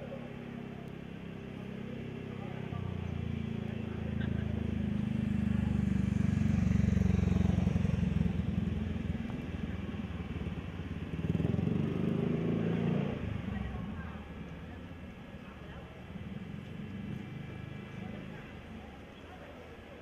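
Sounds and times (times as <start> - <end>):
motorcycle engine revving: 1.4 - 14.1.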